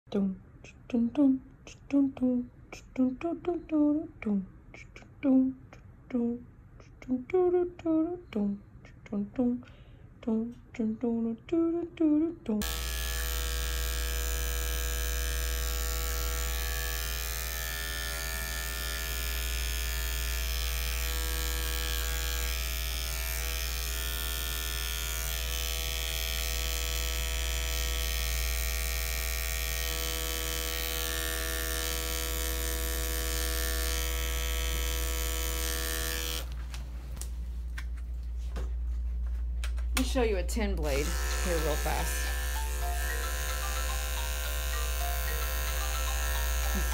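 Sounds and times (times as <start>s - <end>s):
electric clipper buzzing: 12.6s - 36.6s, 40.8s - 46.9s.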